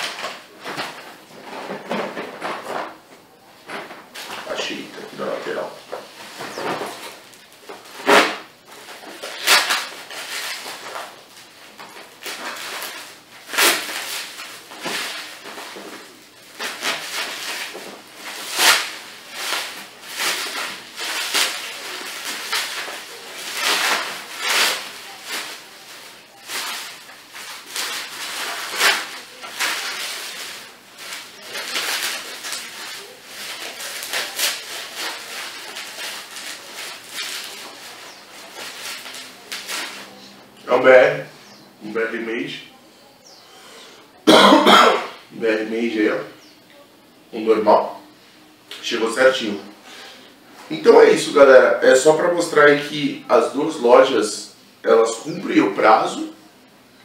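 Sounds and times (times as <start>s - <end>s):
plastic wrap crinkling: 0.0s - 42.6s.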